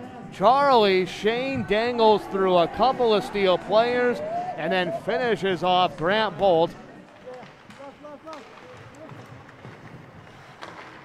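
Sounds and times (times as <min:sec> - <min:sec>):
distant voices echoing: 0:00.6 - 0:09.9.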